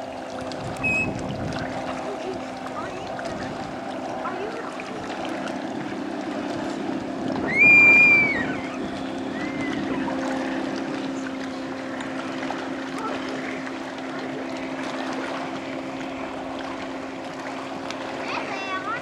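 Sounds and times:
motorboat engine running: 0:00.0 - 0:19.0
water rushing past hull: 0:00.0 - 0:19.0.

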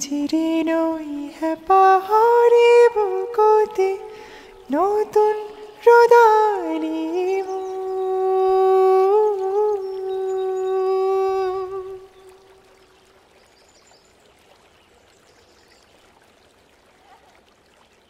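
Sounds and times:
person singing a long note: 0:00.0 - 0:12.5
rushing mountain stream: 0:00.0 - 0:18.0.

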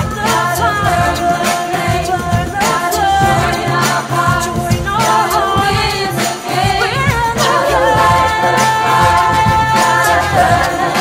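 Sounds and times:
large choir singing: 0:00.0 - 0:11.0.

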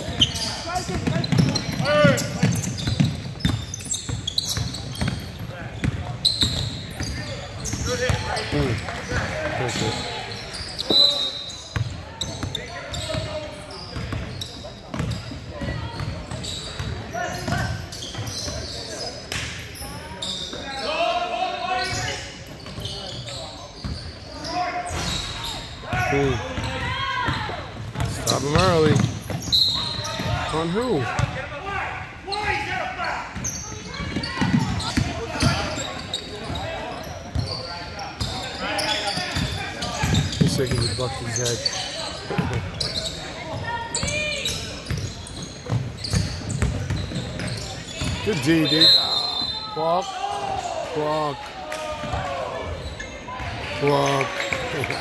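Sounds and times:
basketball bouncing on wooden court: 0:00.1 - 0:09.3, 0:14.0 - 0:18.6, 0:26.6 - 0:30.4, 0:31.2 - 0:31.4, 0:33.4 - 0:35.8, 0:39.3 - 0:40.9, 0:43.9 - 0:48.4
players and spectators shouting: 0:47.5 - 0:55.0.

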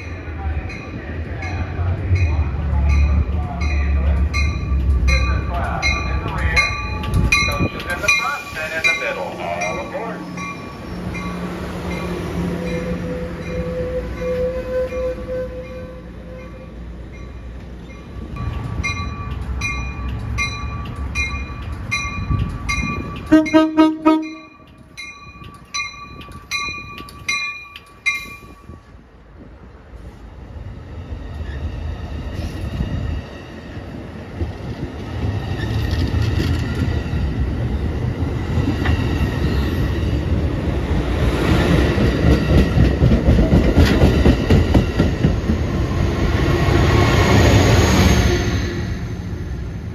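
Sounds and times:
train bell ringing: 0:00.0 - 0:28.9
train cars rumbling past: 0:00.0 - 0:49.9
short train horn toots: 0:23.3 - 0:24.5.

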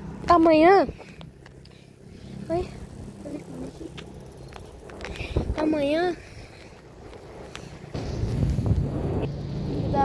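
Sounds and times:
low motor hum with rumble: 0:00.0 - 0:10.0.

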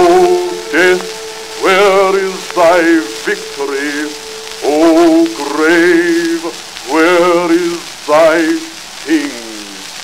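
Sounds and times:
sustained accompaniment: 0:00.0 - 0:08.5
man singing with vibrato: 0:00.0 - 0:09.8
record surface crackle: 0:00.0 - 0:10.0.

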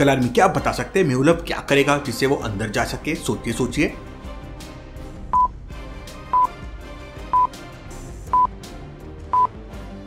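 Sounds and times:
soft background music: 0:00.0 - 0:10.0
countdown timer beeping: 0:05.3 - 0:05.5, 0:06.3 - 0:06.6, 0:07.3 - 0:07.6, 0:08.3 - 0:08.6, 0:09.3 - 0:09.6.

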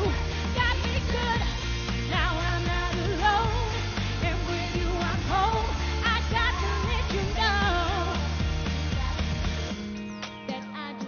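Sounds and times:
woman singing: 0:00.0 - 0:09.8, 0:10.4 - 0:11.0
bass guitar: 0:00.0 - 0:10.5
drums: 0:00.0 - 0:11.0
guitar: 0:00.0 - 0:11.0.

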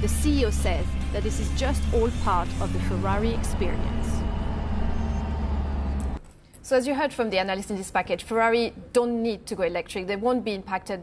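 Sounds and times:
car engine low rumble: 0:00.0 - 0:06.2.

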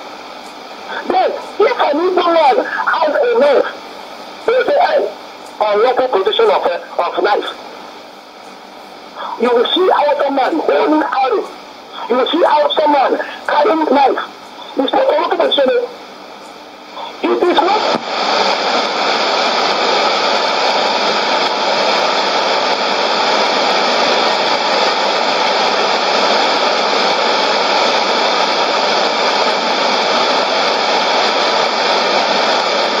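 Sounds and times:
radio static hiss: 0:00.0 - 0:33.0
man's voice on radio: 0:00.9 - 0:03.8, 0:04.5 - 0:07.6, 0:09.2 - 0:15.9, 0:17.0 - 0:17.9.

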